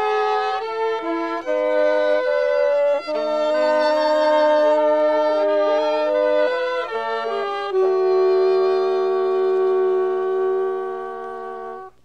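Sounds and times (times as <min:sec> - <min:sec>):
wind instruments holding a chord: 0:00.0 - 0:12.0.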